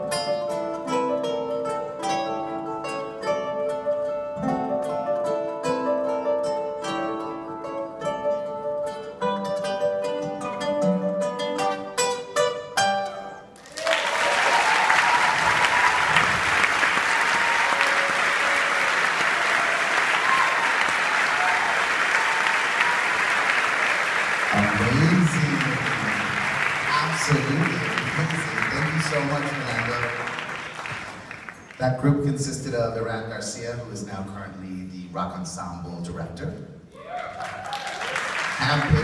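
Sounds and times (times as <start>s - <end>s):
acoustic guitars playing waltz: 0.0s - 13.6s
audience applause: 13.6s - 31.9s, 37.0s - 39.0s.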